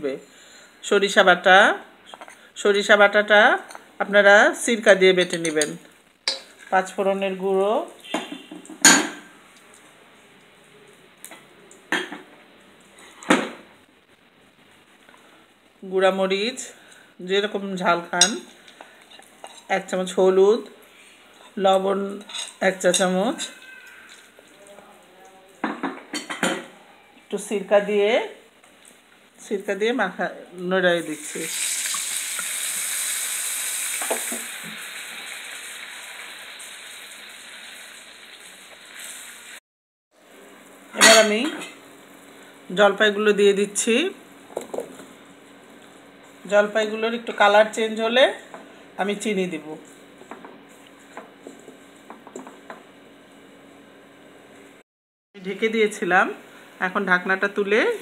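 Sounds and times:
spices sizzling in hot oil: 2.1 - 12.0, 14.6 - 26.4, 27.2 - 39.6, 40.2 - 54.8
spoon tapping metal pan: 5.2 - 6.5
liquid pouring: 31.4 - 33.4.

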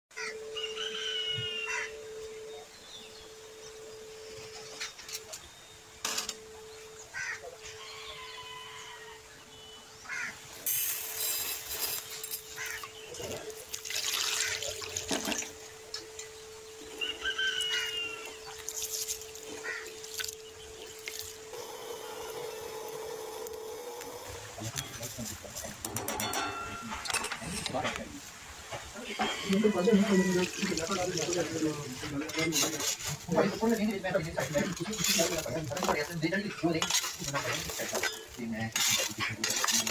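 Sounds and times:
rustling hiss: 10.3 - 14.1
low hum: 14.7 - 27.8.

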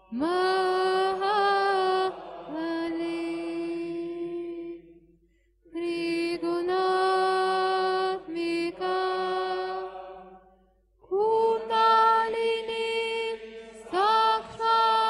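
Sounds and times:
mantra chanting: 5.8 - 10.5, 11.1 - 15.0.

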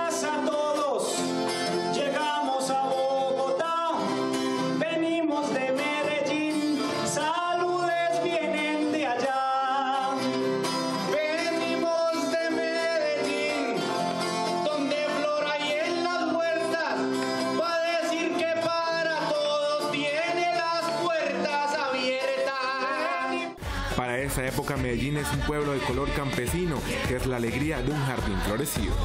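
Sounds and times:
man singing: 0.0 - 29.0
strummed acoustic guitar: 0.0 - 29.0.

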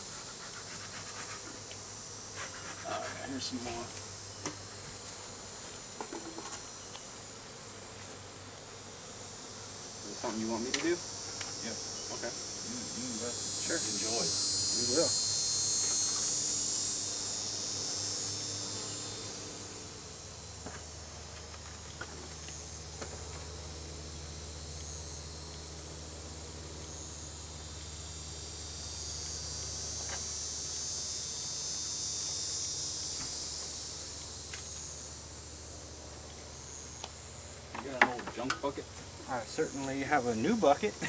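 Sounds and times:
high-pitched insect buzzing: 0.0 - 41.0.

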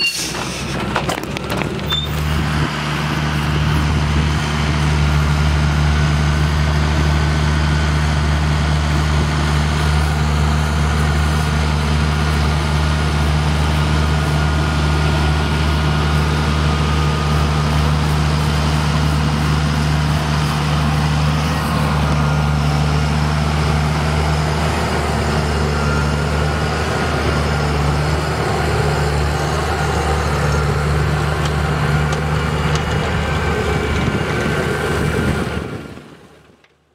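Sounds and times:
tractor diesel engine under load: 0.0 - 36.9.

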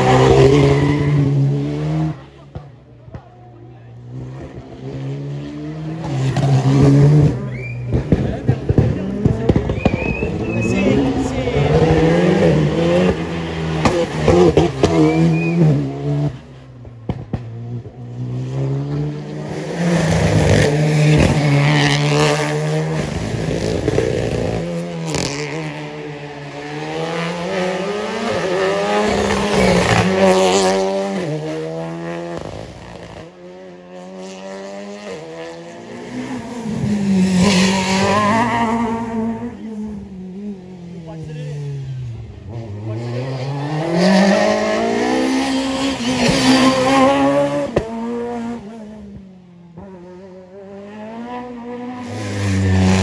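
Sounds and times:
rally car engines revving: 0.0 - 53.0.

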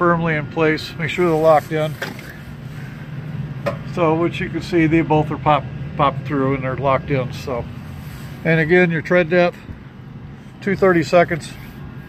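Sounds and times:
low engine hum: 0.0 - 12.0
man speaking: 3.9 - 7.7, 8.4 - 9.6, 10.6 - 11.6.

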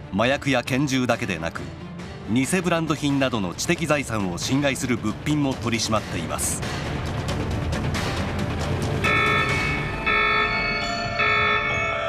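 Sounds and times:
bell-like chimes in music: 9.0 - 12.0.

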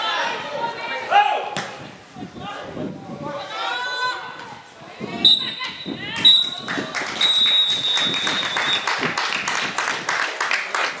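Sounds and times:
referee's whistle long blast: 5.2 - 6.6, 7.2 - 8.8
people clapping: 6.1 - 11.0.

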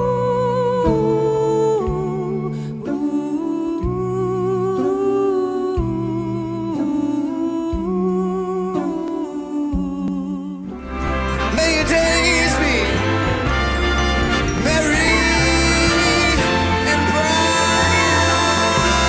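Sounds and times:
lead voice singing with vibrato: 0.0 - 19.0
vocal group holding chords: 0.0 - 19.0.

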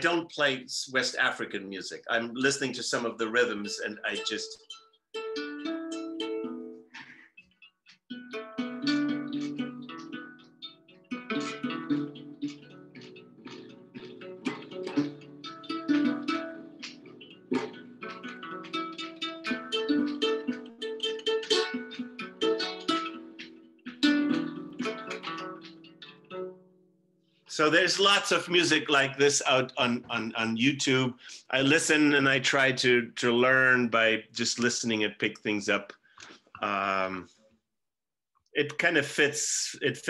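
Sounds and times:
harp-lute plucked rhythmically: 1.2 - 26.6, 27.5 - 35.1.

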